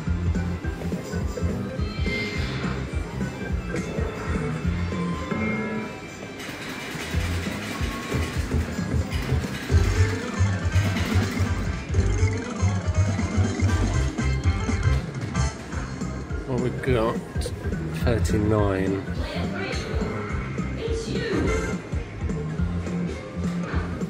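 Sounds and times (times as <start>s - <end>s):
slot machine game music: 0.0s - 24.0s.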